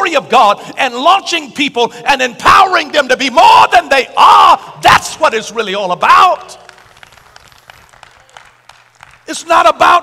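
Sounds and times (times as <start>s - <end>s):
congregation clapping: 6.1s - 10.0s.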